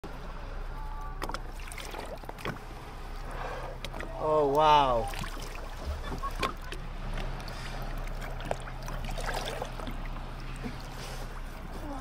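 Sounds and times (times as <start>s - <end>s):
low steady hum: 0.0s - 12.0s
water against hull: 0.1s - 12.0s.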